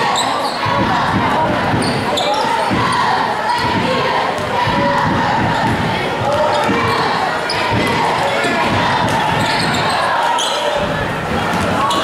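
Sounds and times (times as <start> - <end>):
voices of spectators and players: 0.0 - 12.0.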